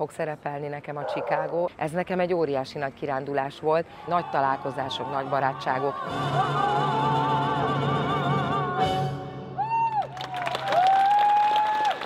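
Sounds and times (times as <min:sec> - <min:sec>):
audience clapping: 0:09.9 - 0:12.0.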